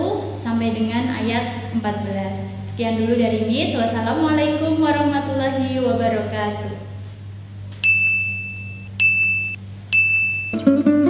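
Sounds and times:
steady low hum: 0.0 - 11.0
high-pitched electronic ding: 7.8 - 10.8.

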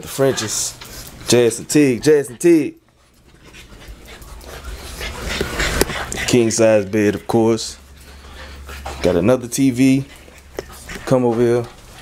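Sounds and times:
dogs panting: 0.0 - 12.0.

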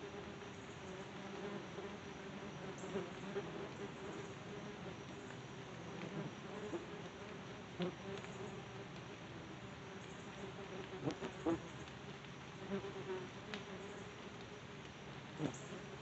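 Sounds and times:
wasps buzzing: 15.4 - 16.0.

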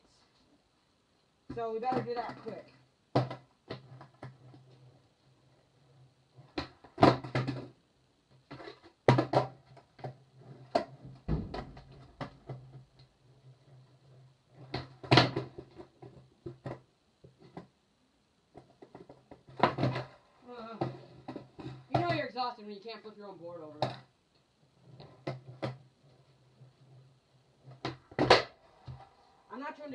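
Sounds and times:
faint low hum: 0.0 - 29.9
skateboard clattering on concrete: 1.9 - 4.7, 6.4 - 7.8, 8.5 - 14.0, 14.6 - 16.8, 18.6 - 22.2, 27.6 - 29.1.

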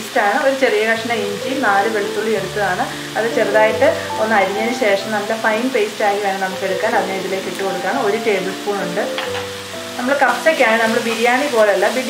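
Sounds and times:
vegetables sizzling in a frying pan: 0.0 - 12.0
melodic background music: 0.9 - 12.0.

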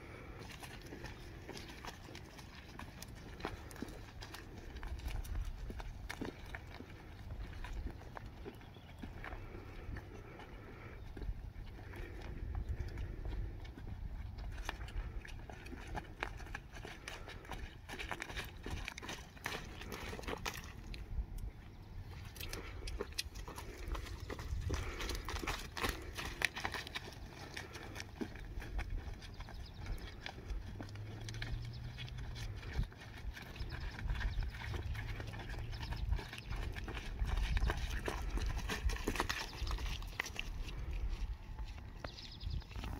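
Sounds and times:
person's footsteps: 0.0 - 42.9
horse hoofbeats on wood chips: 23.2 - 42.3.

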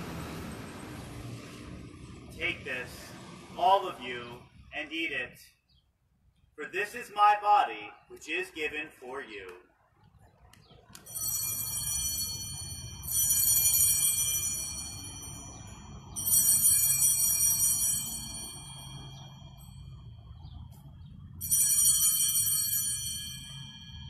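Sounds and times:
altar bells ringing: 11.1 - 24.0.

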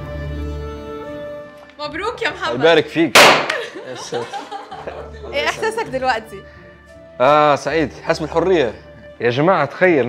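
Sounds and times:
confetti popper pop: 3.2 - 3.7.

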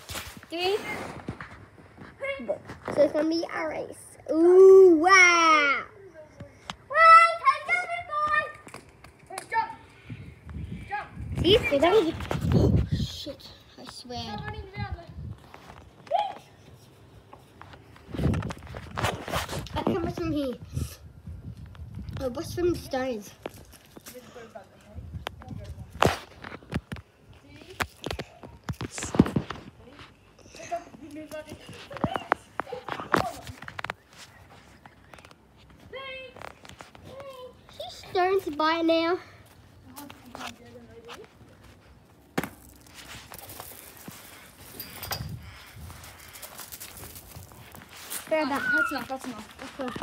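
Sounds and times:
footsteps: 0.0 - 3.4, 7.9 - 20.4, 23.2 - 50.0.

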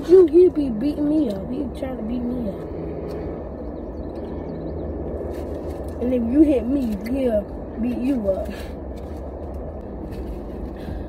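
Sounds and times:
car cabin low rumble: 0.0 - 11.0.

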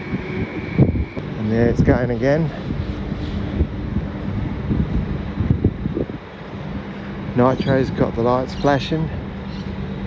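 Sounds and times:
faint hum: 0.0 - 10.0
low mechanical rumble: 0.0 - 10.0
wind buffeting microphone: 0.0 - 10.0.

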